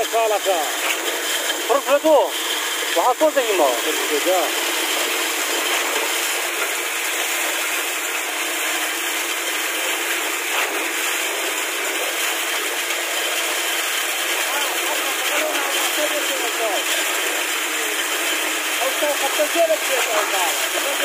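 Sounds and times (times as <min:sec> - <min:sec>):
concrete pump running: 0:00.0 - 0:21.0.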